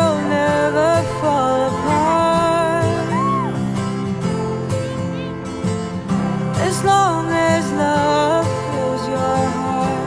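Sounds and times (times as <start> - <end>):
person singing: 0.0 - 3.7, 6.5 - 10.0.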